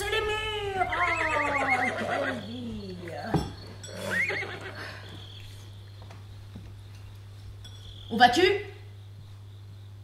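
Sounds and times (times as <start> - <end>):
horse neighing: 0.8 - 2.6, 3.9 - 5.2.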